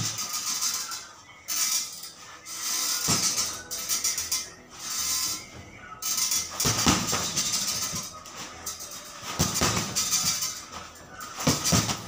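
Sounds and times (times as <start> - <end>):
boxing gloves striking heavy bag: 3.0 - 3.6, 6.5 - 8.1, 9.2 - 10.6, 11.3 - 12.0.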